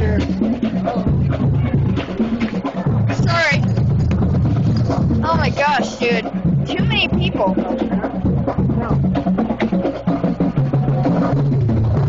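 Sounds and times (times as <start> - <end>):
crowd voices: 0.0 - 11.4
drums: 0.0 - 12.0
marching band playing: 0.0 - 12.0.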